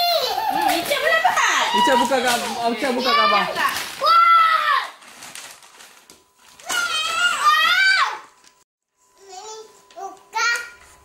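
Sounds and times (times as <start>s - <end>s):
wrapping paper tearing: 0.2s - 8.0s
child's high-pitched exclamation: 3.0s - 5.0s.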